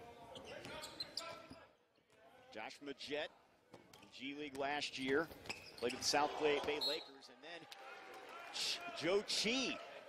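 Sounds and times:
crowd voices in a large hall: 0.0 - 10.0.

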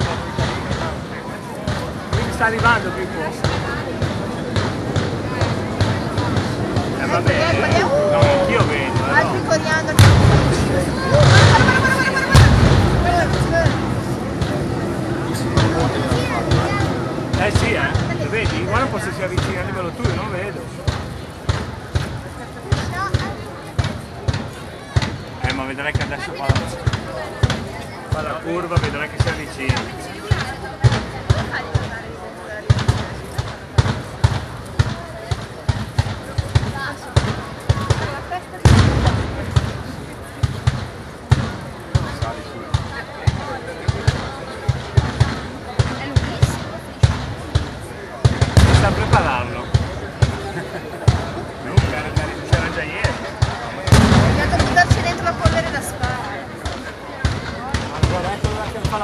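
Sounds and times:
mortar bangs: 0.0 - 22.9, 38.7 - 55.6.

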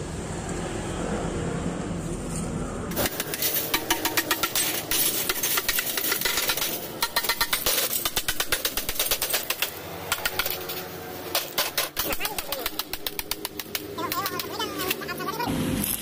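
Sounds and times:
broken glass and plastic clattering: 2.9 - 15.0.

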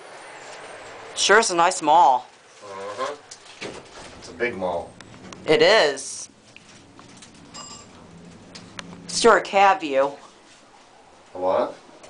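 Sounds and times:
faint elevator hum: 2.4 - 12.0.

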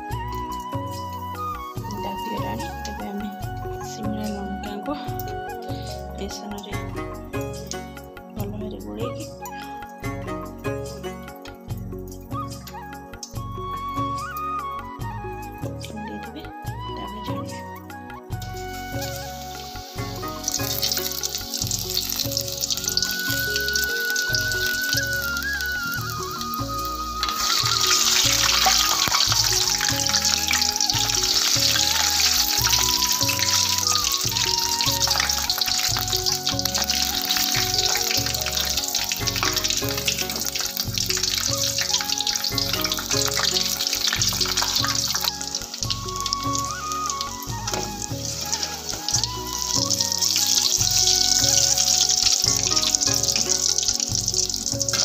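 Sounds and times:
food sizzling in hot oil: 0.0 - 14.9, 18.2 - 55.0
background music with beat: 0.0 - 55.0.

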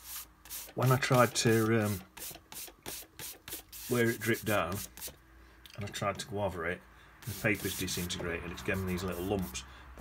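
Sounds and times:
hand brushing across paper: 7.2 - 9.6.

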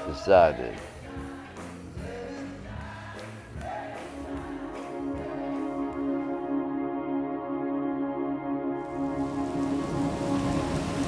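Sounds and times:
sustained background music tones: 0.0 - 11.0
steady rain falling: 8.8 - 11.0.

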